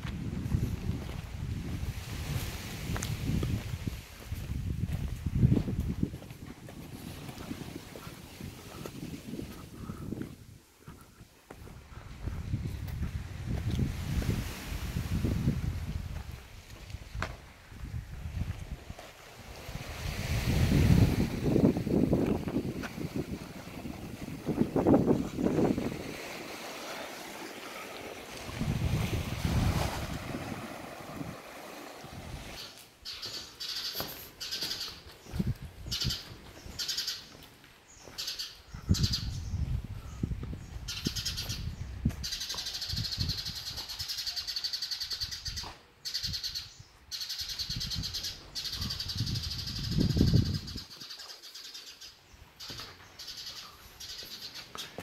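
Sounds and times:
wind buffeting microphone: 0.0 - 26.8, 27.7 - 32.6, 34.7 - 36.8, 38.0 - 44.0, 47.6 - 51.1
birds chirping: 32.6 - 55.0.

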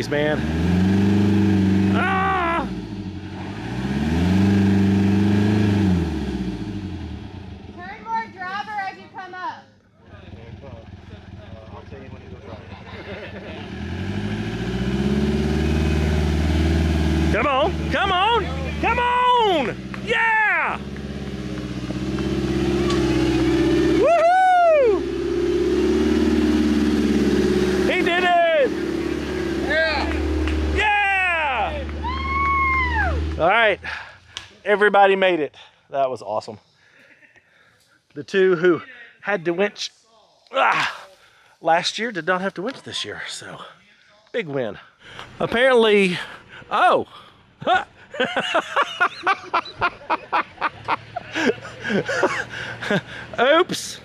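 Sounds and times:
engine labouring and revving: 0.0 - 8.3, 10.1 - 34.5, 45.1 - 54.0.

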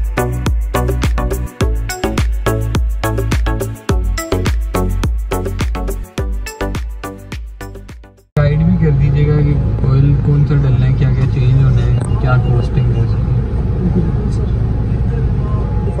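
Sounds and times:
music: 0.0 - 8.3
men talking: 8.4 - 14.6
car rumble: 8.4 - 16.0.

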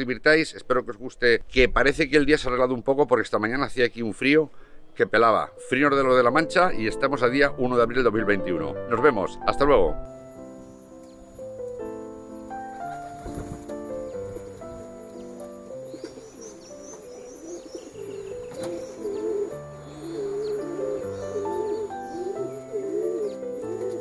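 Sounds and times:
background music with held notes: 5.1 - 24.0
pigeon cooing: 12.9 - 24.0.

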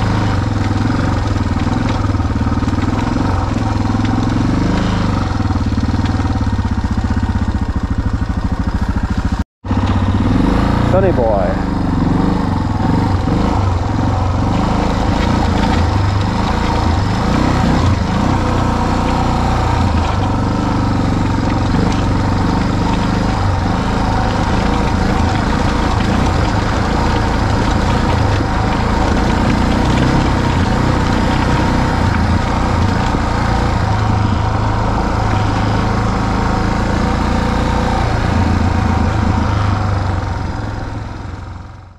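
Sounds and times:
motorcycle engine running: 0.0 - 41.9.

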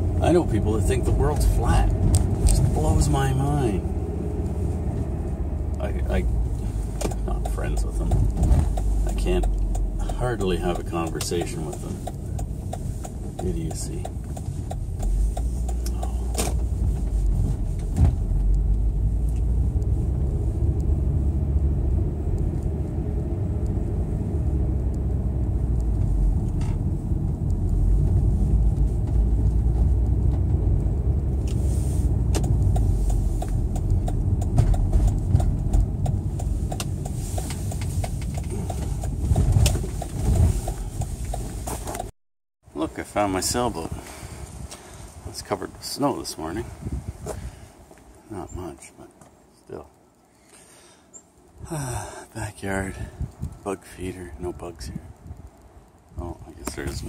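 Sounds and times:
car rumble from inside cabin: 0.0 - 42.1, 42.9 - 47.6, 51.6 - 57.0.

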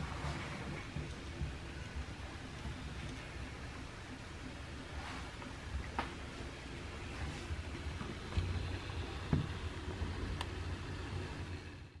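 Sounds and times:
robot motors and wheels rumbling: 6.6 - 12.0.

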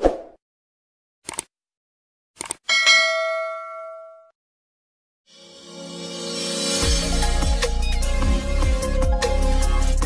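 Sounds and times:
quick clicks: 1.2 - 1.5, 2.4 - 2.6
bell chime: 2.7 - 4.3.

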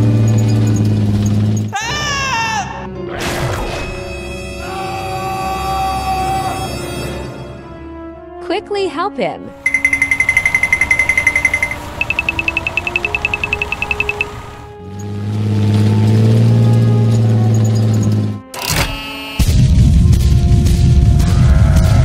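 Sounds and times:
tank engine rumble: 0.0 - 1.8, 9.7 - 18.5
background music: 1.8 - 22.0
high-pitched rattling pulses: 9.7 - 14.6.

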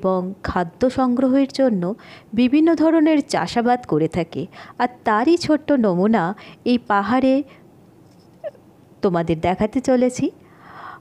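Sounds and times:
woman speaking: 0.0 - 7.5, 9.0 - 10.4.

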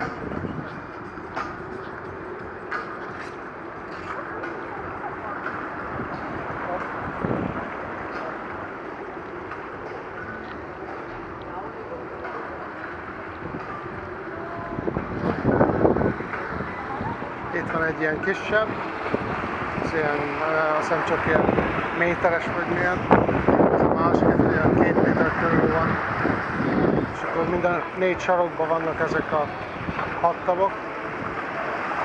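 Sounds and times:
background chatter of people: 0.0 - 32.0
wind over microphone: 0.0 - 32.0.

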